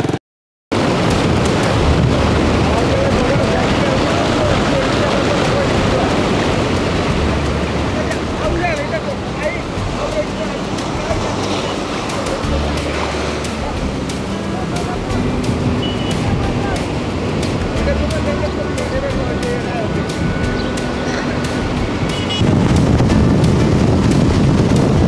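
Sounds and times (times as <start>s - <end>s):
surf breaking on a beach: 0.0s - 25.0s
wind buffeting microphone: 0.8s - 25.0s
faint voices: 1.6s - 6.4s, 7.1s - 21.8s.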